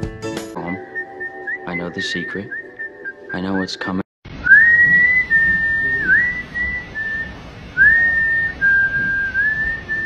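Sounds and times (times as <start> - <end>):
man whistling a tune: 0.7 - 3.6, 4.4 - 10.0.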